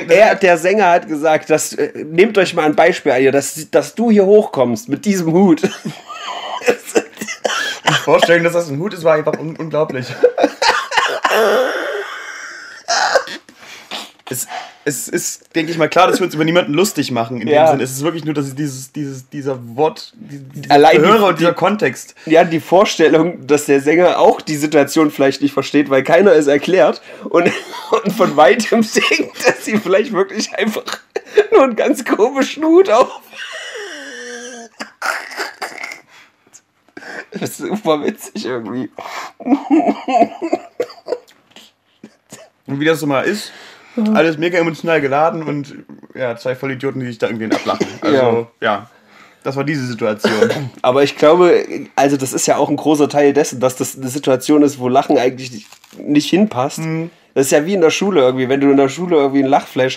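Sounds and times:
person laughing breathily: 5.8s - 8.3s, 10.1s - 13.6s, 33.2s - 36.2s, 37.0s - 42.3s.

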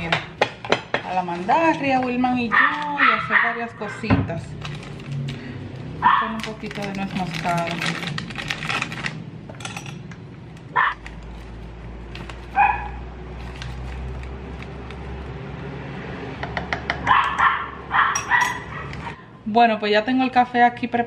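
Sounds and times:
dog barking: 2.5s - 4.0s, 6.0s - 6.3s, 10.7s - 11.0s, 12.6s - 13.0s, 17.1s - 19.1s.

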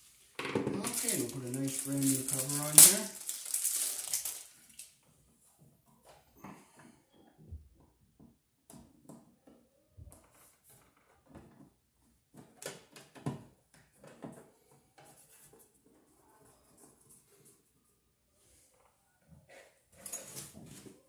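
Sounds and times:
rustling: 0.0s - 4.9s.

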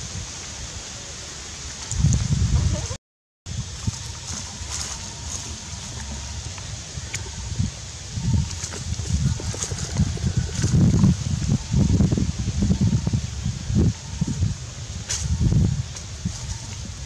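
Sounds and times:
dry leaves rustling: 0.0s - 17.0s
wind buffeting microphone: 1.8s - 17.0s.

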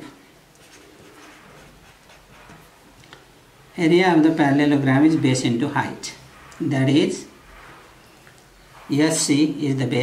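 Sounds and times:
ballpoint pen scratching on paper: 0.6s - 2.8s.

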